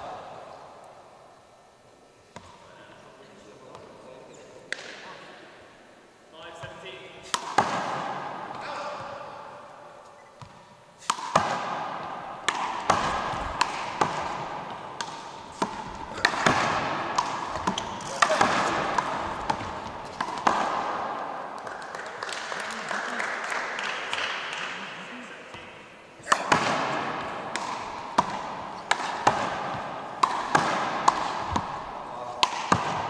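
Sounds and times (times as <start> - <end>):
rubber ball smacking: 12.4 - 21.0, 26.2 - 33.0.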